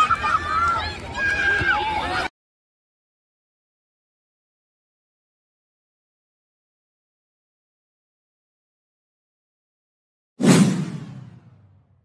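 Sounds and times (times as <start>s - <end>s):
whoosh sound effect: 10.4s - 11.8s.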